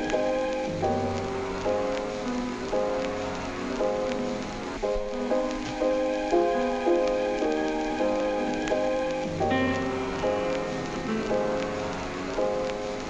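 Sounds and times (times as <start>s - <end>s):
crackling hiss: 0.0s - 13.0s
instrumental music: 0.0s - 13.0s.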